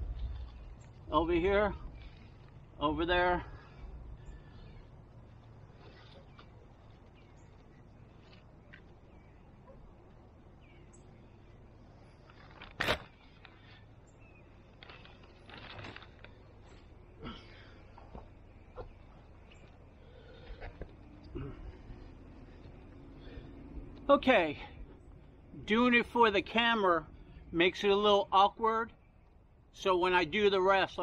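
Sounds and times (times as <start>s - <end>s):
sharp crackle: 0.0s - 2.7s, 11.9s - 24.1s
plastic bag rustling and crinkling: 14.6s - 16.9s.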